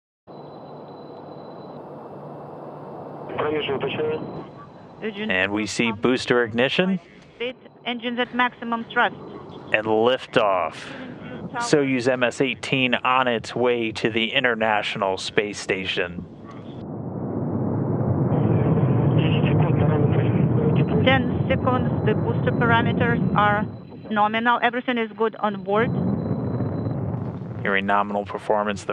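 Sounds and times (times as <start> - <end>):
rocket engine roaring: 0.6 - 25.0, 25.6 - 28.9
faint high tone: 3.3 - 9.1, 9.7 - 16.1, 27.7 - 28.9
person speaking: 5.0 - 9.1, 9.7 - 16.2, 19.2 - 25.9, 27.7 - 28.9.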